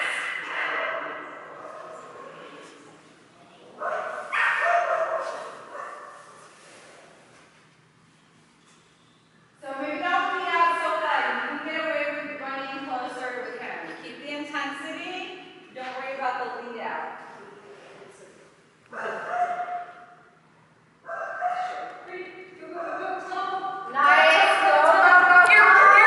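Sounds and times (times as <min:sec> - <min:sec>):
dog barking: 0:03.8 - 0:06.2, 0:18.9 - 0:20.2, 0:21.0 - 0:22.0.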